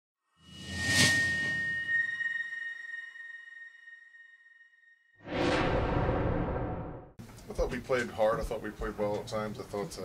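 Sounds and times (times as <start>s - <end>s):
high ringing tone: 0.4s - 5.2s
low rumble: 5.2s - 7.2s
whoosh: 5.2s - 7.2s.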